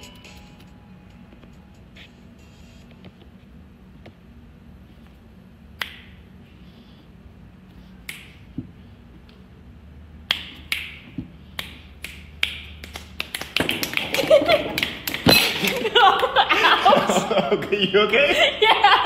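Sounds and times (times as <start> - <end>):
fingers snapping: 5.8 - 6.2, 8.0 - 8.4, 10.2 - 13.6.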